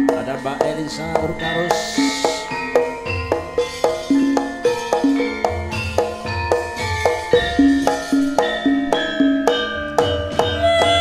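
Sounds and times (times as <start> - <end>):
hand drumming: 0.0 - 11.0
metallophones and kettle gongs: 0.0 - 11.0.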